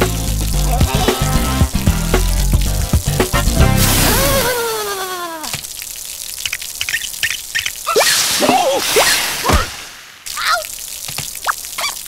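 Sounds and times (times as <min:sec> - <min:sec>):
cartoon water drips: 0:00.0 - 0:12.0
cartoon swooshing pitch sweeps: 0:03.7 - 0:05.0.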